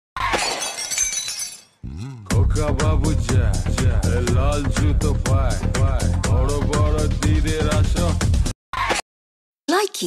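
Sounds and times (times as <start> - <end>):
glass shattering: 0.2 - 1.8.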